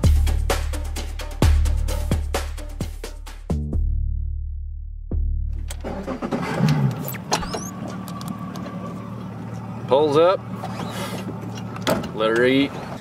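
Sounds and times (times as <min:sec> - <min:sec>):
electronic background music: 0:00.0 - 0:03.9
boat engine running: 0:05.6 - 0:13.0.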